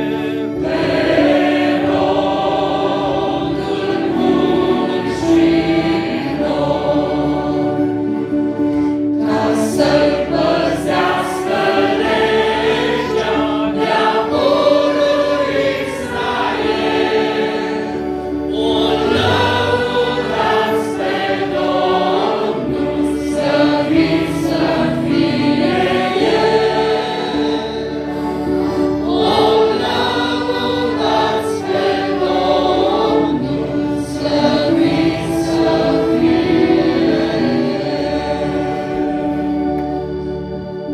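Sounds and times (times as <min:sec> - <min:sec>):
choir singing a hymn: 0:00.0 - 0:40.9.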